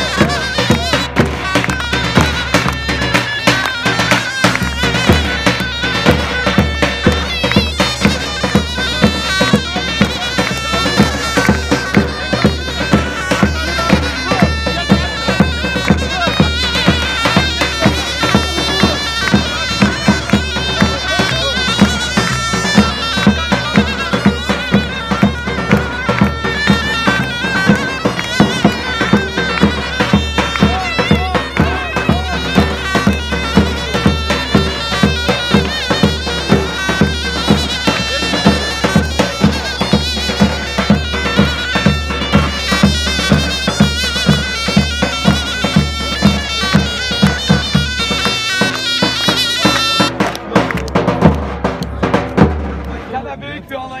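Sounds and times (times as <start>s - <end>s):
reed pipe melody: 0.0s - 54.0s
steady drum beats: 0.0s - 54.0s.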